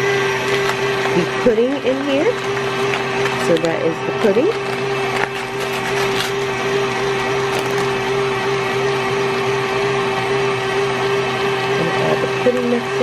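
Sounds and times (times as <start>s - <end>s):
stand mixer motor humming: 0.0s - 13.0s.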